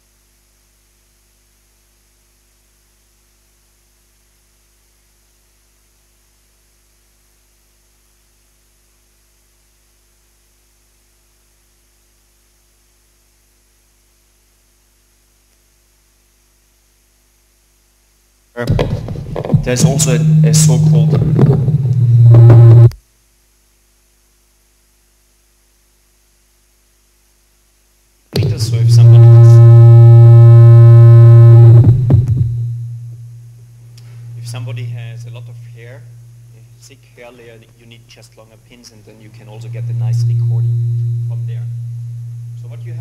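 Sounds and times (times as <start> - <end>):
loud low electrical hum: 0.0 - 43.0
microphone handling rubbing: 18.6 - 22.9, 28.4 - 33.4, 34.0 - 36.8
loud low hum: 18.6 - 23.0, 28.4 - 37.0, 39.1 - 43.0.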